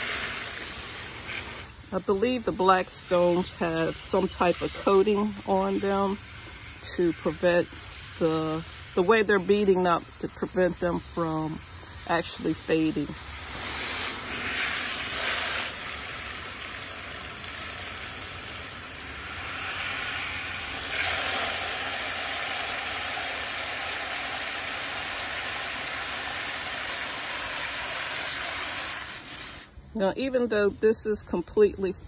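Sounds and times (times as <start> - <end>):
hose spray splashing on stones: 0.0 - 32.0
spray filling pot of water: 0.0 - 32.0.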